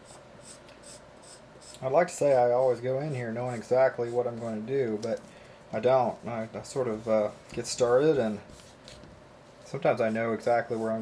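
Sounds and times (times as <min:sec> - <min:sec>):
pencil scratching on paper: 0:00.0 - 0:02.4, 0:06.1 - 0:08.9.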